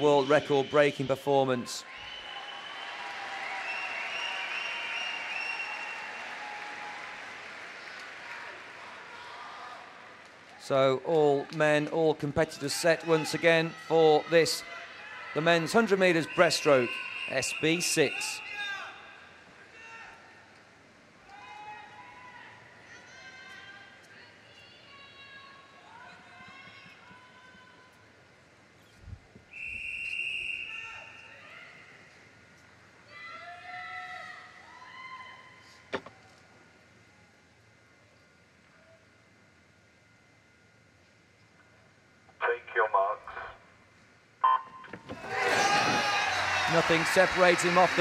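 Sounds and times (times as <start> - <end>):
loud crowd noise: 0.0 - 20.5, 45.0 - 48.0
referee's whistle: 16.2 - 18.6, 29.5 - 31.3.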